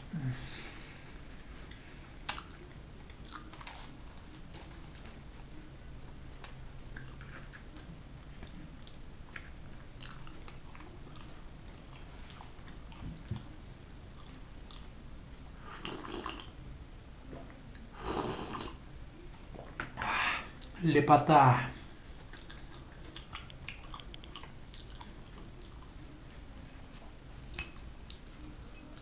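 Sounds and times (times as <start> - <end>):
chewing flaky pastry: 1.6 - 16.6, 21.8 - 29.0.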